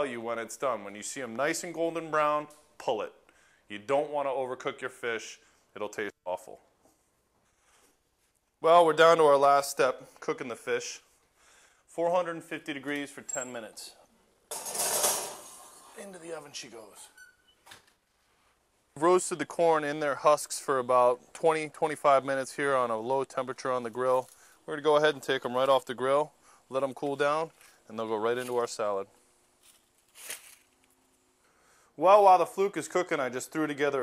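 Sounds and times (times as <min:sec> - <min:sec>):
glass dish scraping on metal rack: 0:14.5 - 0:16.0
dry corn husks rustling: 0:29.6 - 0:30.7.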